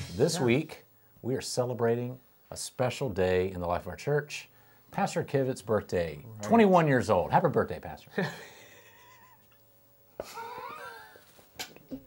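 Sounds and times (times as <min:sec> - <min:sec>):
man's squeaky giggle: 0:08.4 - 0:09.5, 0:10.2 - 0:11.3.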